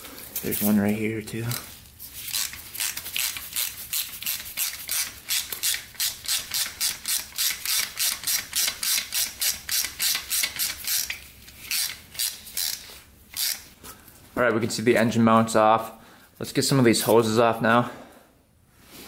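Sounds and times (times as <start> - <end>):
ratchet wrench clicking: 2.3 - 13.6.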